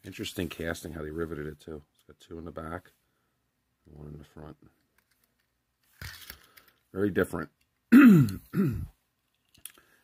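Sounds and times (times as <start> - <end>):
man coughing: 7.9 - 8.9.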